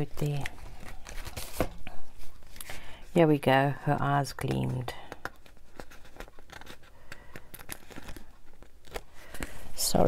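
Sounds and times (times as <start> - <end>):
paper pages flipping: 0.0 - 2.9, 5.1 - 10.0.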